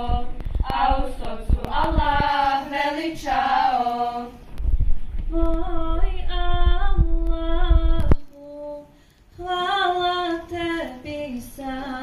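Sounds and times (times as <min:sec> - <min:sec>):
girl singing unaccompanied: 0:00.0 - 0:04.4, 0:05.3 - 0:12.0.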